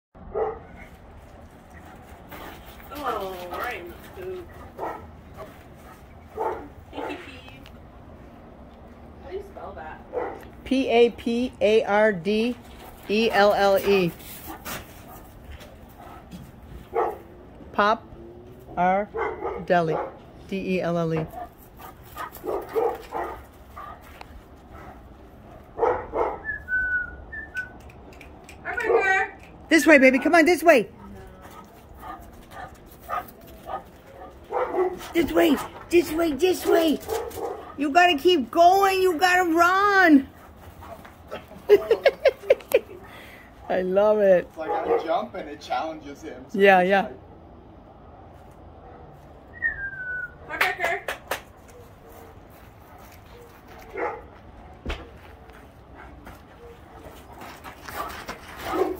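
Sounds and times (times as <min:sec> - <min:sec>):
large dog barking: 0:00.3 - 0:00.8, 0:04.6 - 0:05.5, 0:06.3 - 0:07.2, 0:16.9 - 0:17.3, 0:19.1 - 0:20.2, 0:21.3 - 0:24.0, 0:25.6 - 0:26.5, 0:31.6 - 0:35.8, 0:37.0 - 0:37.8, 0:44.6 - 0:45.3, 0:53.0 - 0:54.3, 0:58.0 - 0:58.9.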